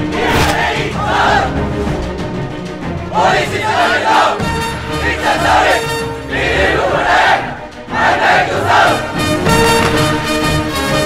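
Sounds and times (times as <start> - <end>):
dramatic orchestral film music: 0.0 - 11.0
men shouting in unison: 0.1 - 1.6.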